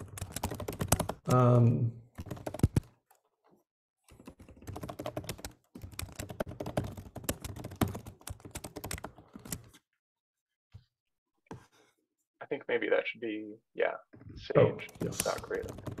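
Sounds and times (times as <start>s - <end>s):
computer keyboard typing: 0.0s - 1.4s, 2.1s - 3.2s, 4.1s - 9.8s, 14.8s - 16.0s.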